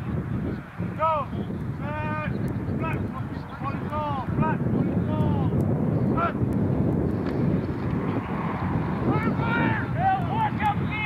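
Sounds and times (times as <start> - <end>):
wind rumble on microphone: 0.0 - 11.0
player shouting calls: 0.9 - 5.5, 6.1 - 6.5, 9.1 - 11.0.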